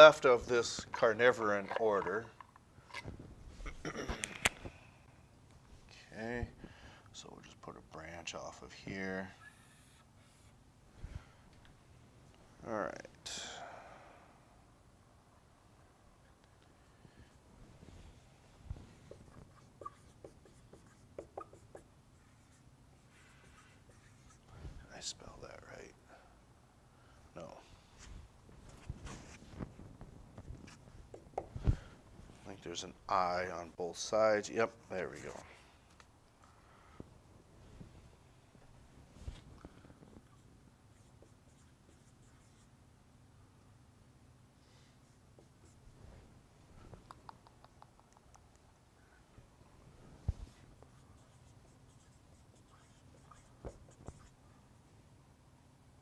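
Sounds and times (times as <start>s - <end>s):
marker squeaking on a whiteboard: 18.9s - 24.5s, 50.9s - 54.4s.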